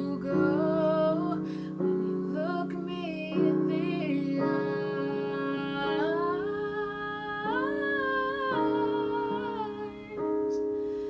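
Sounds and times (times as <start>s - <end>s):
keyboard chords: 0.0s - 11.0s.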